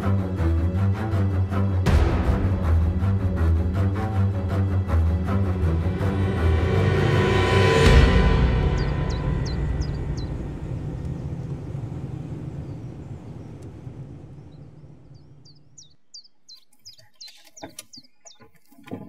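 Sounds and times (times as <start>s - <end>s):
dramatic background music: 0.0s - 14.6s
birds chirping: 8.2s - 19.0s.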